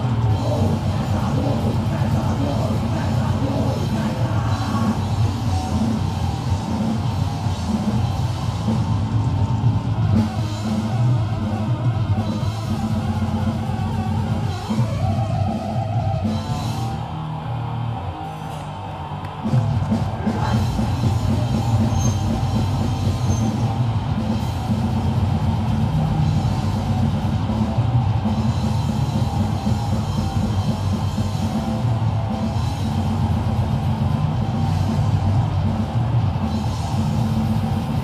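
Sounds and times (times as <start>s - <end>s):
grindcore band playing live: 0.0s - 17.4s, 19.4s - 38.0s.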